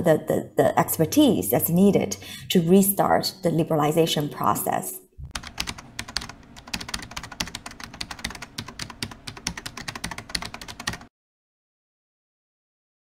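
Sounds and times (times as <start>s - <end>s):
fast keyboard typing: 5.3s - 11.1s.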